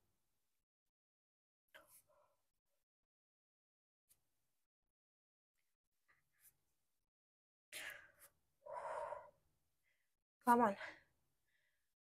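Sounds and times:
woman breathing hard: 7.8 - 10.1.

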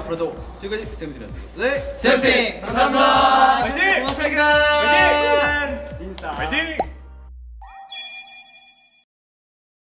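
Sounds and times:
bright chime: 7.6 - 9.0.

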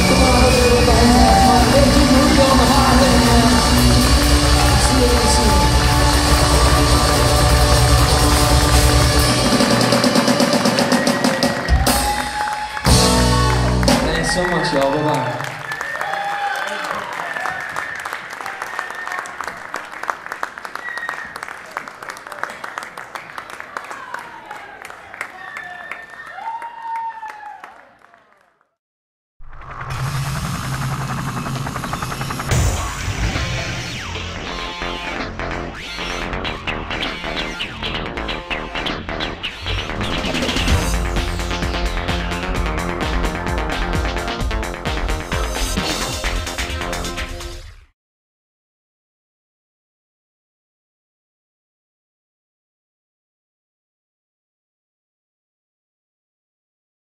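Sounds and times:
rock band playing live: 0.0 - 14.5, 36.2 - 47.6
low mechanical drone with flutter: 29.4 - 34.4
logo sting: 29.4 - 37.8.

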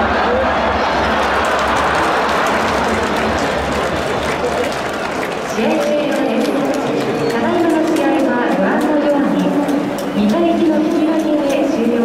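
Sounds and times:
stadium announcer speaking: 5.4 - 12.0.

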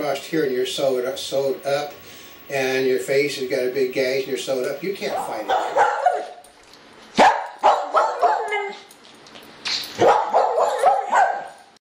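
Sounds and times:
dog barking: 5.5 - 6.4, 7.2 - 8.9, 10.0 - 11.7.

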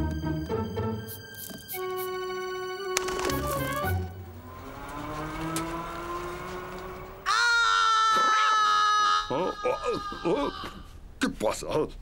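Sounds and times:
cartoon background music: 0.0 - 4.4.

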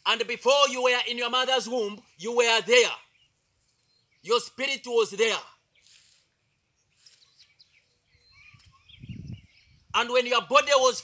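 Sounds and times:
faint bird chirps: 3.0 - 4.3, 5.5 - 10.0.

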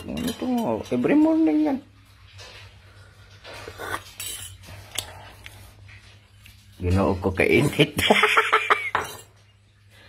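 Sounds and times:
metal spoon clinking on glass: 0.0 - 1.2, 4.2 - 4.6, 8.8 - 9.4.

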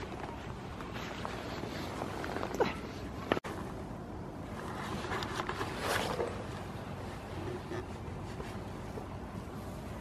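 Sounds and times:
low wind rumble: 0.0 - 10.0.

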